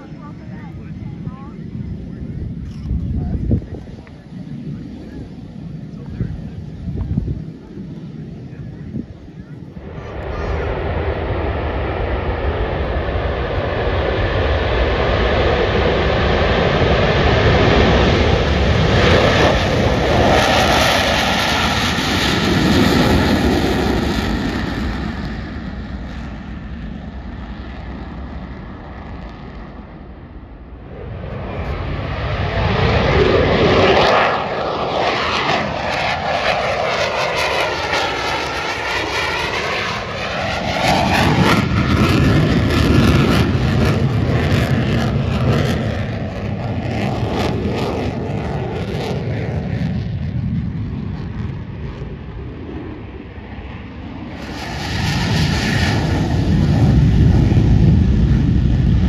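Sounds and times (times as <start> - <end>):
jet passing roar: 0.0 - 59.0
jet roar: 0.0 - 59.0.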